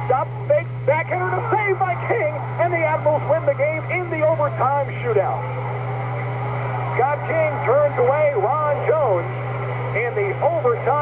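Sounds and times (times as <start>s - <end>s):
radio sports commentary: 0.0s - 11.0s
steady low hum: 0.0s - 11.0s.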